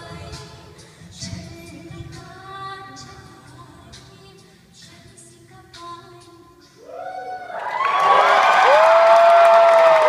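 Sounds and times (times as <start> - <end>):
audience applause and cheering: 6.8 - 10.0.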